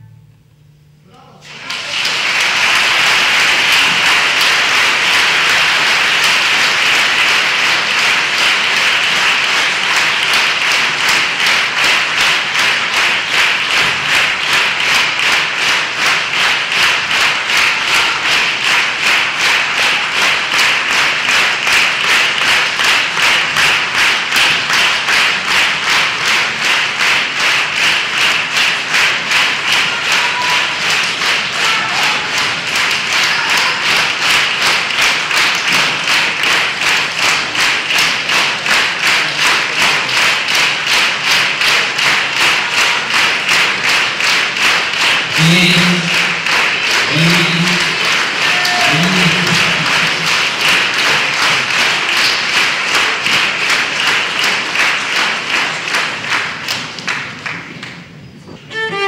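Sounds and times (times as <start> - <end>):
audience clapping in rhythm: 1.4 - 59.0.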